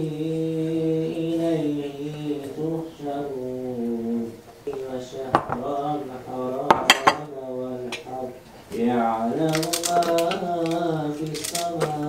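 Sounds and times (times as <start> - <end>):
person singing long notes: 0.0 - 12.0.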